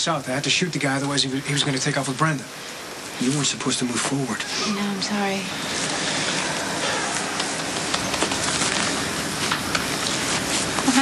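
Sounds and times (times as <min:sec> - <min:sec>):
steady hiss: 0:00.0 - 0:11.0
small crackles: 0:05.7 - 0:11.0.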